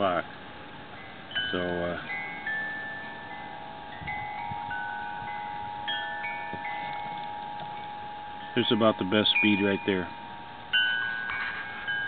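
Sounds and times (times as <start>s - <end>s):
chimes ringing: 0.8s - 12.0s.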